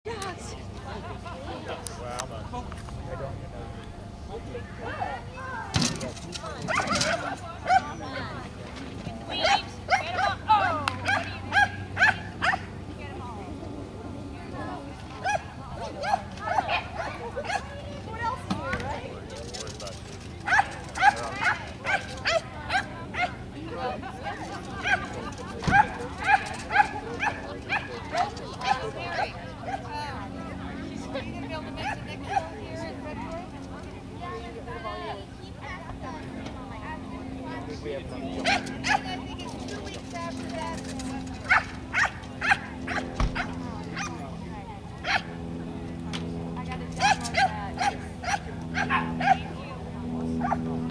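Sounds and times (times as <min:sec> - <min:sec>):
dog barking: 0:11.0 - 0:12.7, 0:16.0 - 0:17.7, 0:20.5 - 0:23.4, 0:25.7 - 0:27.9, 0:38.4 - 0:39.1, 0:41.5 - 0:44.1, 0:45.0 - 0:45.3, 0:47.0 - 0:49.5, 0:50.4 - 0:50.6.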